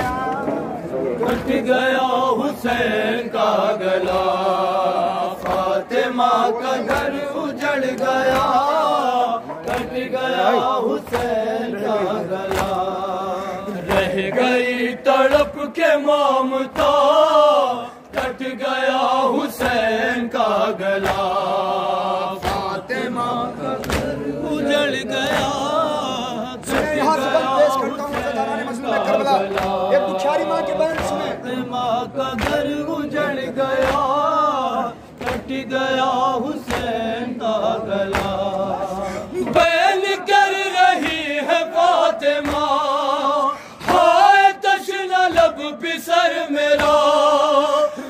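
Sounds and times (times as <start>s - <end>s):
men chanting a lament in unison: 1.0s - 48.0s.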